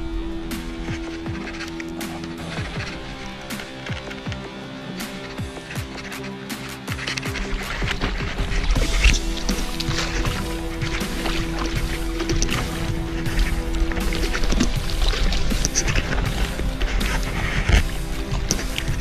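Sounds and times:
background music: 0.0s - 19.0s
fish splashing at surface: 0.0s - 19.0s.

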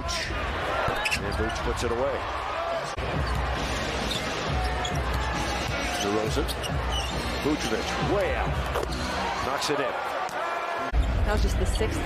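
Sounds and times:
crowd noise: 0.0s - 12.0s
shoe squeaks: 4.0s - 7.5s.

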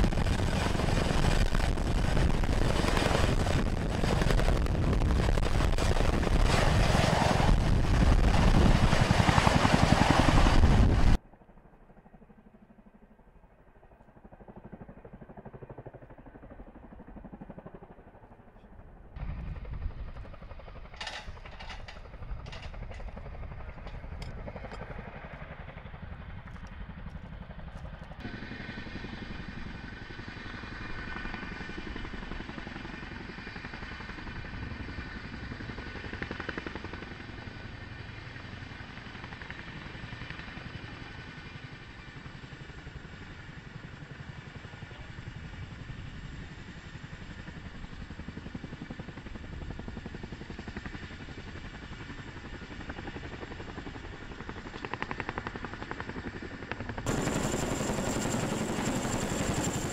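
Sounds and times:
helicopter rotors droning: 0.0s - 59.9s
high turbine whine: 57.1s - 59.9s.

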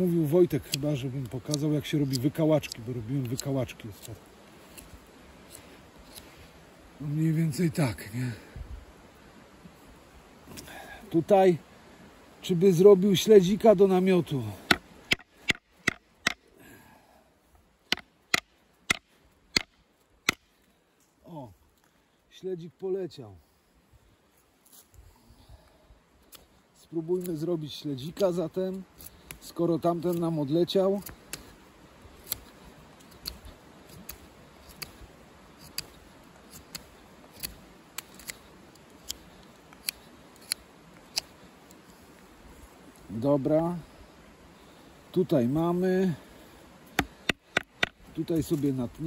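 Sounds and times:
knife chopping into branch: 20.3s - 20.5s.

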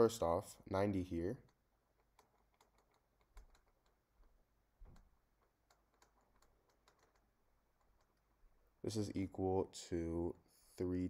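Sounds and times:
stylus tapping on pen tablet: 1.5s - 8.3s.

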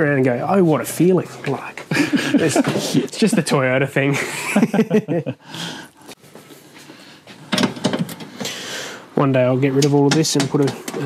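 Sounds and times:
man talking and laughing: 1.6s - 5.9s
sharp clicks and knocks: 7.5s - 8.5s, 9.8s - 11.0s.

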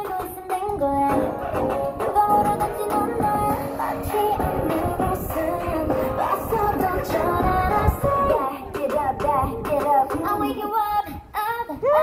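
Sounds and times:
pop song with female vocal: 0.0s - 12.0s.

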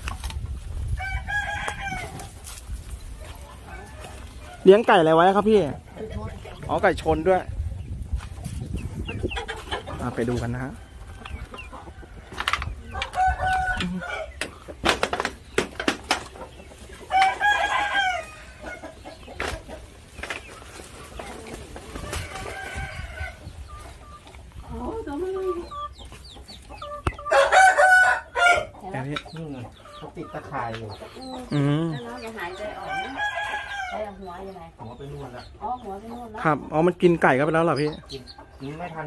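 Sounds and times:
roosters crowing: 0.8s - 7.4s, 8.8s - 36.2s, 37.0s - 39.0s.

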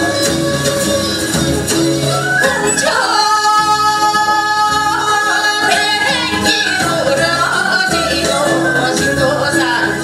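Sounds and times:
backing accompaniment: 0.0s - 10.0s
woman singing a folk song: 2.8s - 10.0s.

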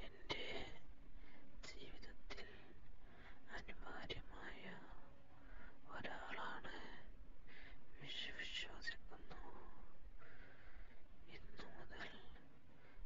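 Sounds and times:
person whispering: 3.5s - 5.0s, 5.9s - 7.1s, 8.0s - 9.9s, 11.3s - 12.4s.

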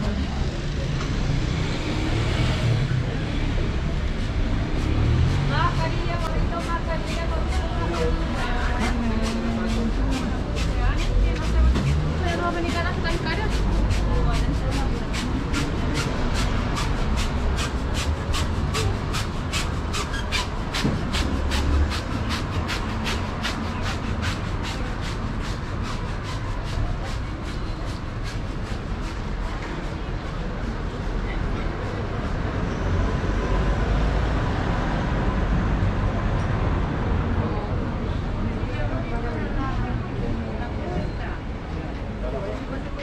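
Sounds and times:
passers-by talking: 0.0s - 43.0s.

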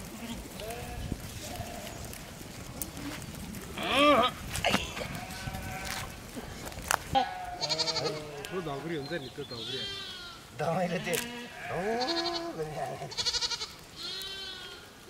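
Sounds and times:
sheep bleating: 0.1s - 2.0s, 3.8s - 6.1s, 7.1s - 15.0s.

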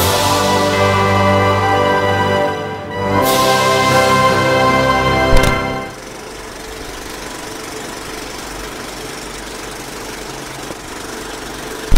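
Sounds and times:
music cue ending with hit: 0.0s - 6.0s
small motor running: 6.0s - 11.9s.

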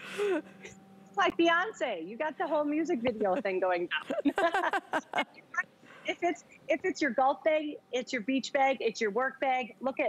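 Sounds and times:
woman speaking: 1.2s - 5.4s, 6.1s - 10.0s
woman laughing: 2.4s - 5.4s, 6.1s - 6.4s.

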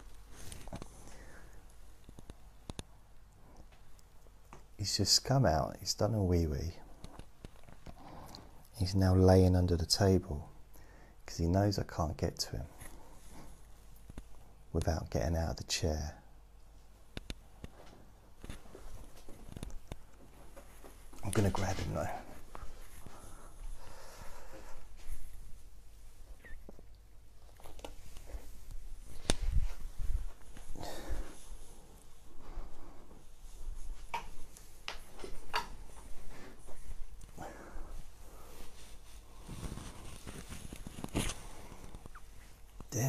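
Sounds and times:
shuffling and rustling: 0.0s - 4.8s, 16.7s - 42.9s.

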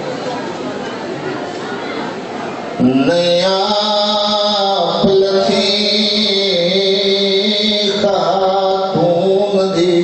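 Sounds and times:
man chanting: 2.8s - 10.0s.

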